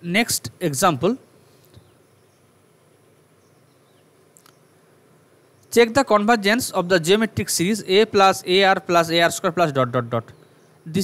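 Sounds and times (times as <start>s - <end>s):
man speaking: 0.0s - 1.2s, 5.7s - 10.3s
faint recording hiss: 0.0s - 11.0s.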